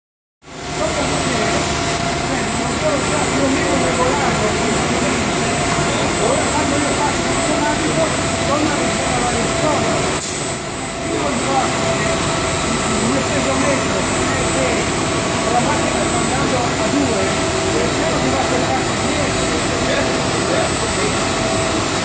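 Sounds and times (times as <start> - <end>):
high steady whine: 0.4 - 22.0
machine hum and whir: 0.4 - 22.0.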